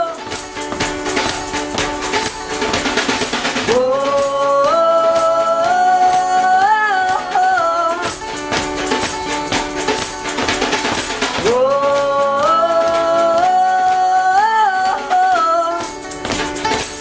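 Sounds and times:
shaken hand percussion: 0.0 - 17.0
strummed acoustic guitar: 0.0 - 17.0.

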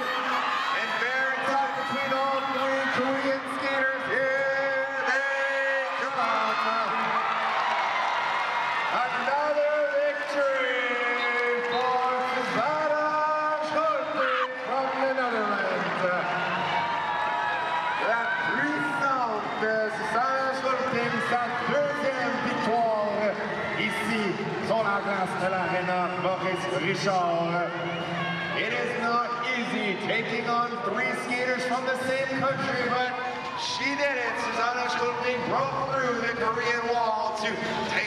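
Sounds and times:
excited sports commentator: 0.0 - 7.5, 8.8 - 17.0, 17.9 - 38.0
arena crowd noise: 0.0 - 38.0.

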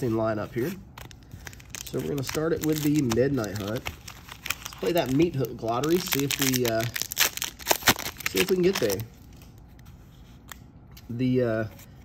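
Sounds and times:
handling trading cards: 0.5 - 11.2.

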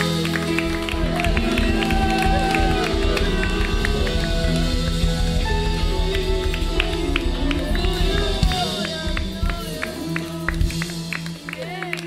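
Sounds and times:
sustained bass notes: 0.0 - 11.8
voices singing: 0.0 - 12.0.

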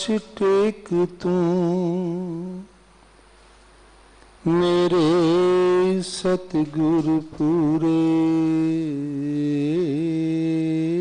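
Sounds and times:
man chanting: 0.0 - 2.7, 4.4 - 11.0
faint background hiss: 0.0 - 11.0.

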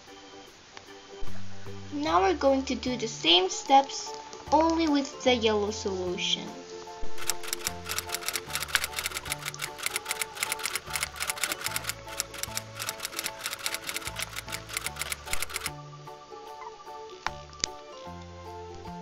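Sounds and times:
typewriter keys clicking: 7.2 - 15.7.

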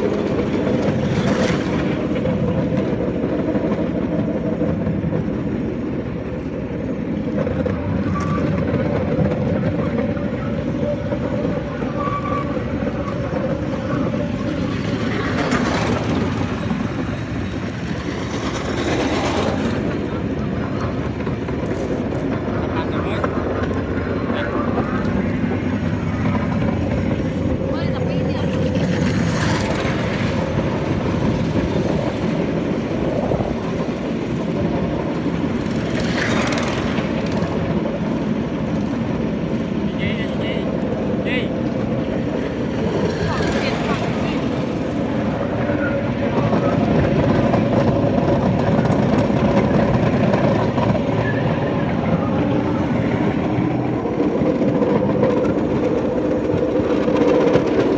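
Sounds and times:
wheels rumbling on rails: 0.0 - 57.9.

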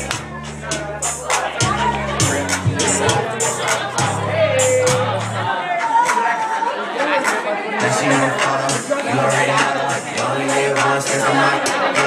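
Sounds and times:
crowd voices: 0.0 - 12.0
loud dance music: 0.0 - 12.0.

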